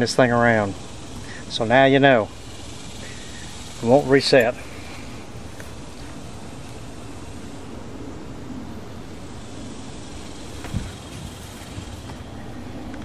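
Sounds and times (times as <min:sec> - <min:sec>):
low outdoor background rumble: 0:00.0 - 0:13.0.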